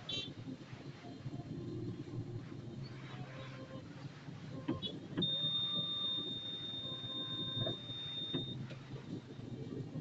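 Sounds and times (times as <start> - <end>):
high-pitched electronic beep: 5.2 - 8.6.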